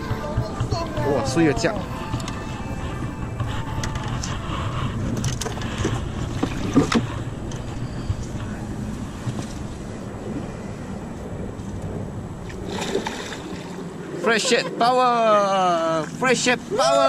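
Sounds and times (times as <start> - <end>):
water lapping around boat: 0.0 - 14.8
wind on microphone: 0.0 - 14.8.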